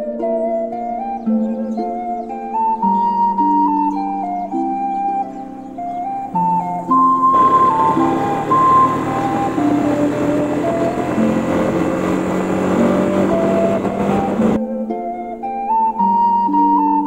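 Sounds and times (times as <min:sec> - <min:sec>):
background music with stepping melody: 0:00.0 - 0:17.0
motorcycle engine and road noise: 0:06.8 - 0:14.6.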